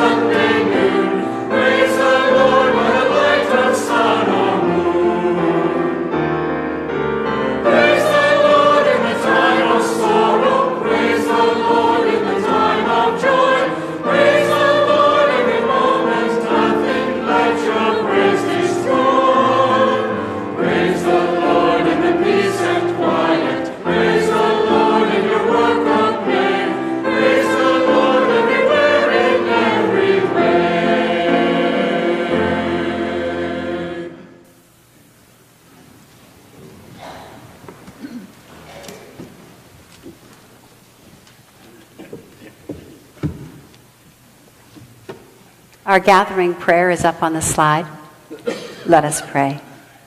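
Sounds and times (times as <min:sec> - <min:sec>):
keyboard accompaniment: 0:00.0 - 0:34.4
choir and congregation singing hymn: 0:00.0 - 0:34.6.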